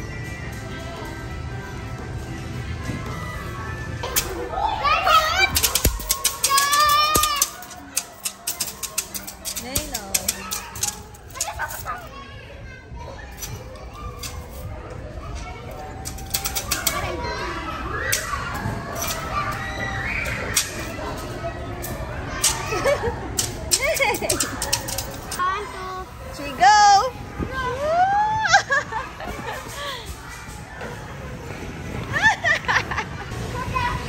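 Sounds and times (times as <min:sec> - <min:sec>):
children playing and calling out: 0:00.0 - 0:34.0.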